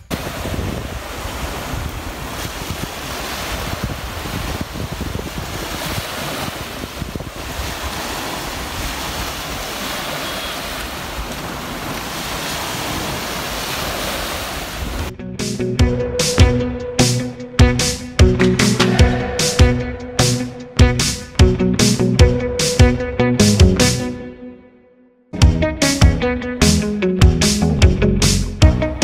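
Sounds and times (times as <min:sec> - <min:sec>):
small waves washing on sand: 0:00.0 - 0:15.1
wind buffeting microphone: 0:00.0 - 0:15.1
music: 0:15.1 - 0:29.0.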